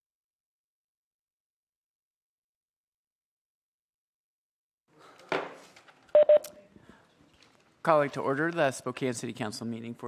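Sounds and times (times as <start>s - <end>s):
short electronic beeps: 6.2s - 6.5s.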